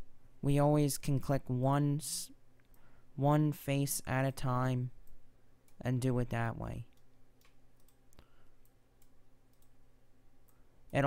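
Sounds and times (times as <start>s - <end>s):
faint steady low hum: 0.0s - 11.0s
computer mouse clicks: 6.9s - 9.8s.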